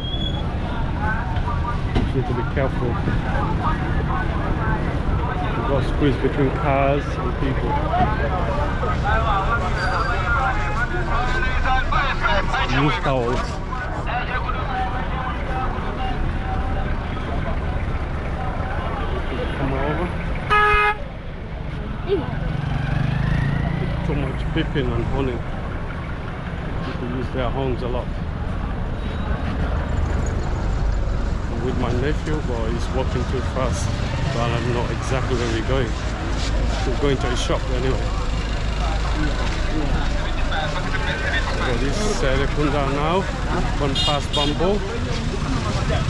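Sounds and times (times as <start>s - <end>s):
car engines rumbling in traffic: 0.0s - 46.0s
many voices talking and calling: 0.0s - 46.0s.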